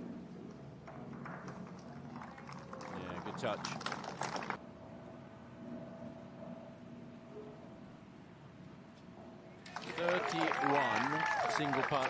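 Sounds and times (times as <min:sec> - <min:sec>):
crowd applauding: 0:01.2 - 0:04.6, 0:09.6 - 0:12.0.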